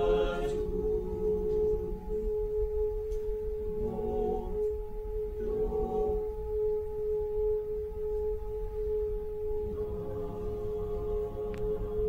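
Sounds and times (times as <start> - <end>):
choir holding a long note: 0.0 - 2.4, 3.6 - 6.8, 9.6 - 12.0.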